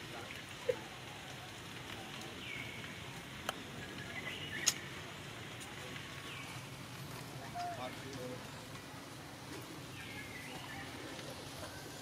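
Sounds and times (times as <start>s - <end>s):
low background noise: 0.0s - 12.0s
sharp clicks: 3.4s - 4.9s.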